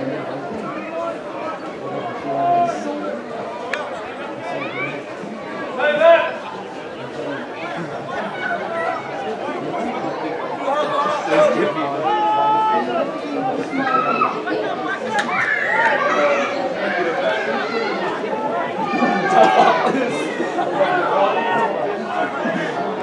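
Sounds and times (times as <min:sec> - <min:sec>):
loud crowd shouts: 0:00.0 - 0:06.8, 0:07.7 - 0:23.0
crowd chattering and calling out: 0:00.0 - 0:23.0.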